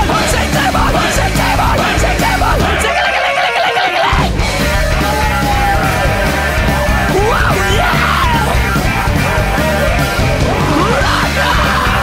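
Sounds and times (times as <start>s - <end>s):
rock band playing: 0.0s - 12.0s
electric guitar: 4.1s - 12.0s
person yelling vocals: 4.9s - 8.7s, 9.4s - 12.0s.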